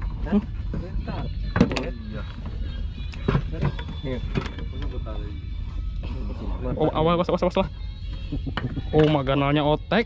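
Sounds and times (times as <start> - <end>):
low hum: 0.0 - 10.0
men's voices: 0.0 - 10.0.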